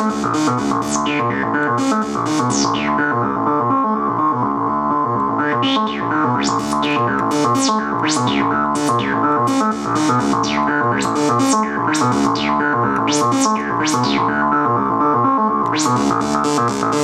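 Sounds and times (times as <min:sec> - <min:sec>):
synthesizer repeating note pattern: 0:00.0 - 0:17.0.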